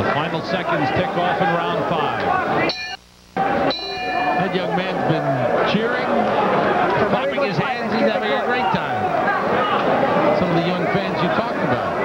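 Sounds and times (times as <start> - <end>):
boxing ring bell: 2.7 - 3.0, 3.7 - 5.0.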